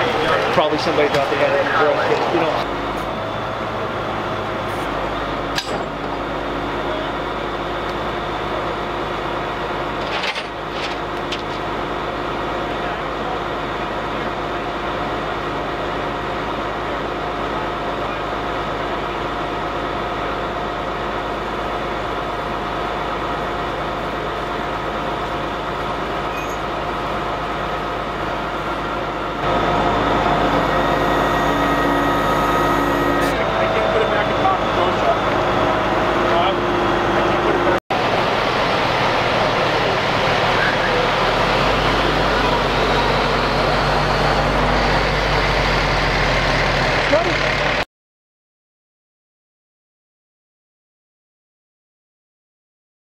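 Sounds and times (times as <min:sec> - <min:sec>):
tow truck engine hum with whine: 0:00.0 - 0:47.8.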